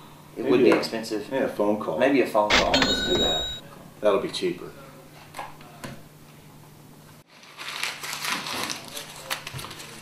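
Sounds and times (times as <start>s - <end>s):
low room hum: 0.0s - 10.0s
paper being crumpled: 7.3s - 10.0s.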